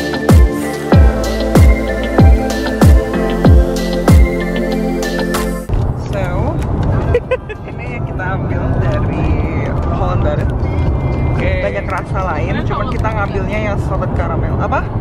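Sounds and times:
electronic music: 0:00.0 - 0:05.7
road noise inside a car: 0:05.7 - 0:15.0
people talking: 0:06.0 - 0:10.6, 0:11.4 - 0:14.9.

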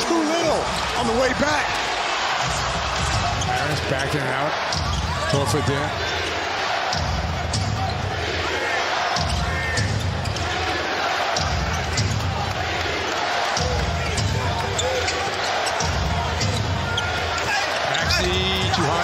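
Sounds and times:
crowd noise: 0:00.0 - 0:19.0.

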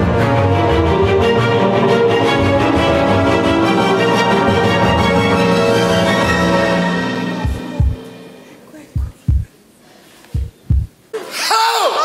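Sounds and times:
heartbeat thumps: 0:07.4 - 0:08.0, 0:08.9 - 0:09.6, 0:10.3 - 0:11.0.

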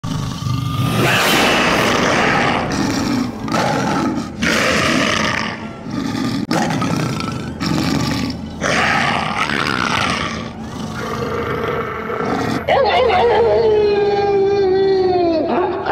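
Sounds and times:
werewolf growls and roars: 0:00.0 - 0:12.7.

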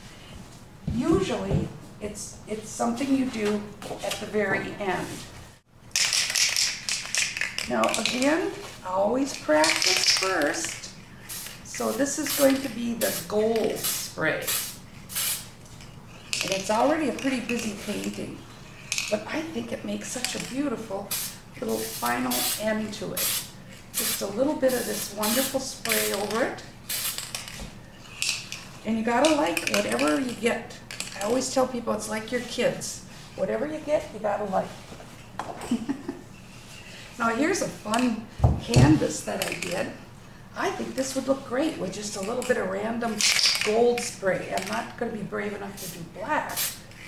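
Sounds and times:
short high spray hiss: 0:12.2 - 0:15.5, 0:21.1 - 0:22.6.

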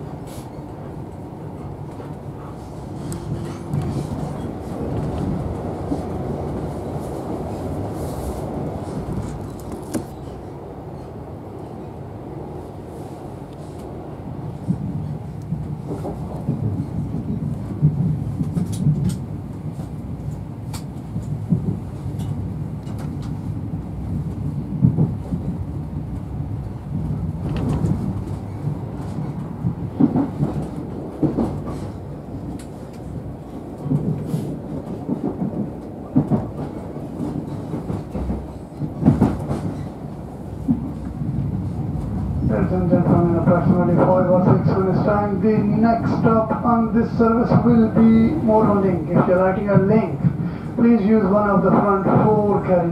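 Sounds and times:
train wheels rumbling on rails: 0:00.0 - 0:52.9
track knocks and clatter: 0:01.8 - 0:07.7, 0:14.6 - 0:50.5, 0:51.1 - 0:52.9.

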